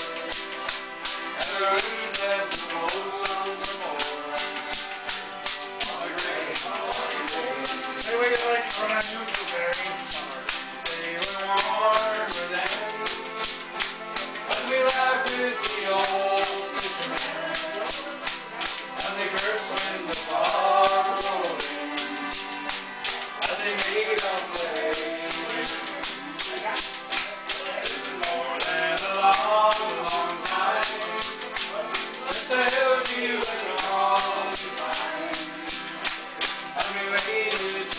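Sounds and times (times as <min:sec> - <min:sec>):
acoustic guitar: 0:00.0 - 0:37.9
button accordion: 0:00.0 - 0:37.9
jingling percussion beat: 0:00.0 - 0:37.9.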